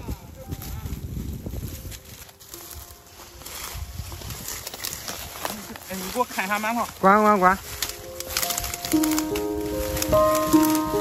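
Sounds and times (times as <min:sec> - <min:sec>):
footsteps through reeds: 0:00.0 - 0:11.0
reed stalks rustling and crackling: 0:00.0 - 0:11.0.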